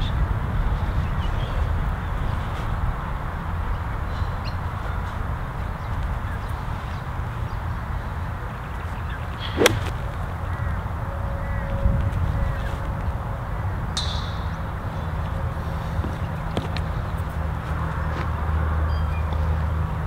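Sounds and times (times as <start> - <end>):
wind rumble on microphone: 0.0 - 14.0
golf club striking ball: 9.6 - 10.1.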